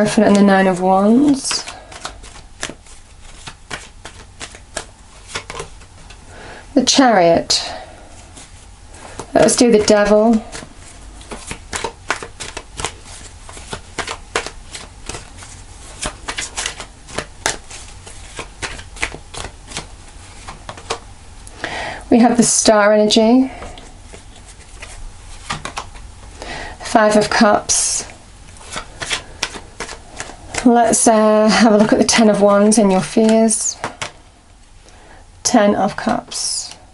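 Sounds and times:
cards shuffled by hand: 0.1s - 6.2s, 8.3s - 21.1s, 23.5s - 34.2s.

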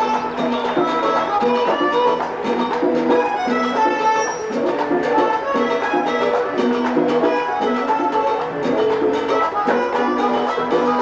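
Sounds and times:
button accordion playing: 0.0s - 11.0s
percussion beat: 0.0s - 11.0s.

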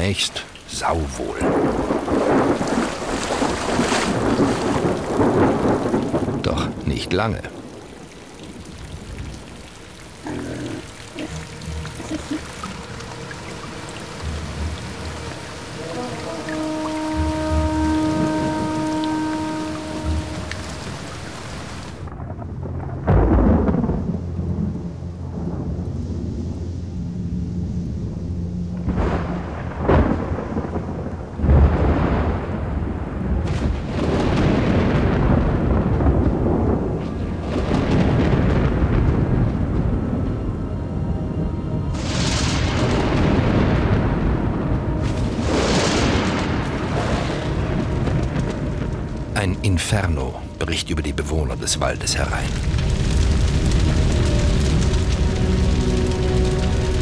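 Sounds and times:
steady rain: 0.0s - 57.0s
rolling thunder: 1.2s - 57.0s.

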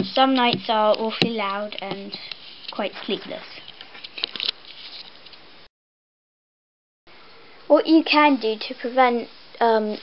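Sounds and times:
low hiss: 0.0s - 5.7s, 7.1s - 10.0s.

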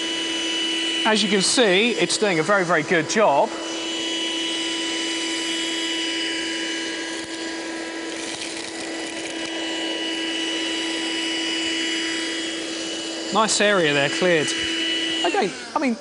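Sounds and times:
handheld vacuum cleaner running: 0.0s - 16.0s.

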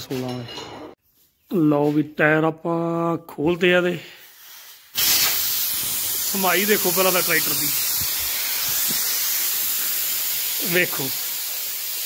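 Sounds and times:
loud steady hiss: 4.0s - 12.0s.

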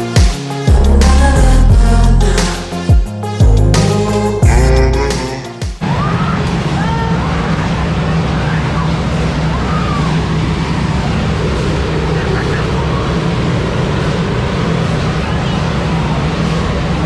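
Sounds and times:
pool water rumbling wash: 5.8s - 17.0s.

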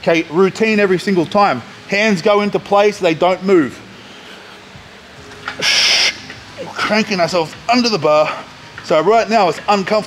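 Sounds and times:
loud hissing breath of effort: 5.6s - 6.3s.

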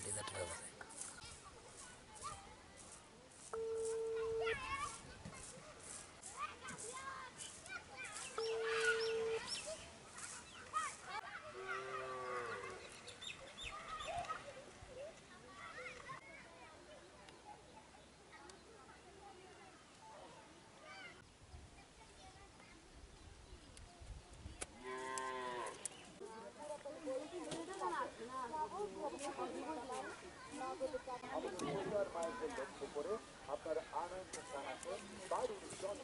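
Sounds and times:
birds chirping: 6.7s - 11.2s, 11.8s - 14.6s.

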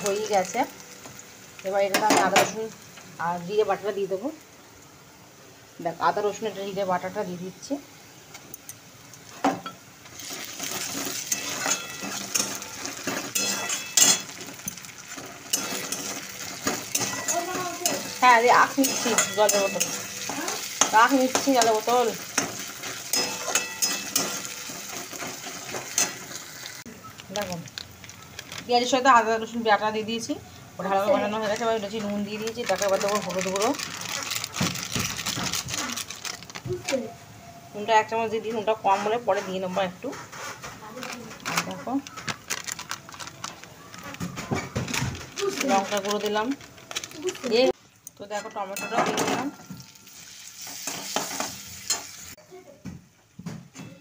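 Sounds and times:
onions sizzling in hot oil: 0.0s - 40.7s, 41.3s - 52.4s
metal spatula scraping a pan: 10.2s - 26.5s, 38.8s - 40.8s, 48.3s - 52.3s.

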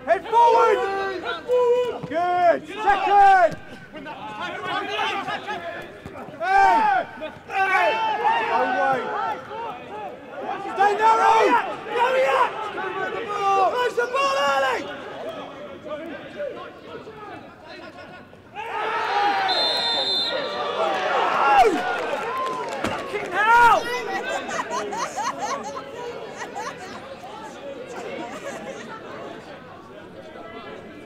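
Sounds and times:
footballers shouting: 0.0s - 17.4s, 18.5s - 25.0s
referee's whistle blast: 19.4s - 20.7s.

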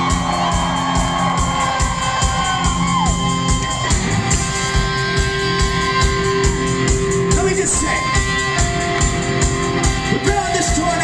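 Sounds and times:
bass guitar: 0.0s - 11.0s
drums keeping a steady beat: 0.0s - 11.0s
electric guitar: 0.0s - 11.0s.

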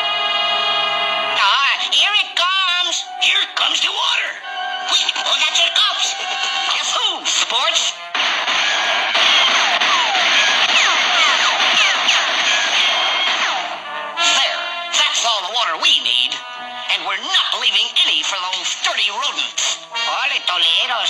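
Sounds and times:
orchestral music: 0.0s - 21.0s
loud noisy sound effect: 8.2s - 13.9s.

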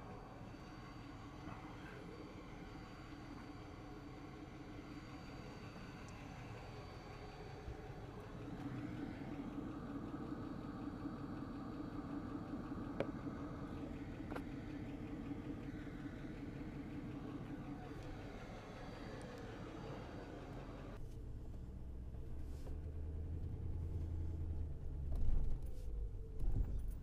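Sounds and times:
vehicle engine idling: 0.0s - 27.0s.

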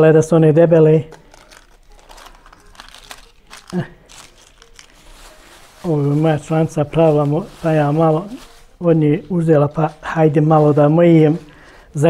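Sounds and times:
pastry sheets crinkling: 0.8s - 12.0s.

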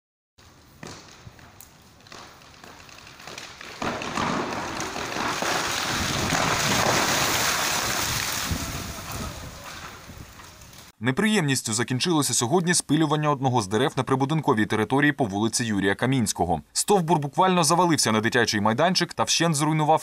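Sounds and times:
wind on microphone: 8.0s - 10.6s.

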